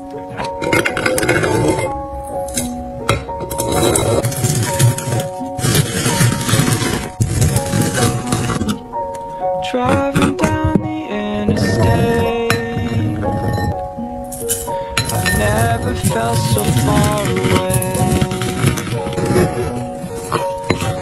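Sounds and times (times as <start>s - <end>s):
background pop music: 0.0s - 21.0s
muddler crushing fruit in cup: 3.8s - 8.8s, 9.8s - 13.3s, 15.1s - 21.0s.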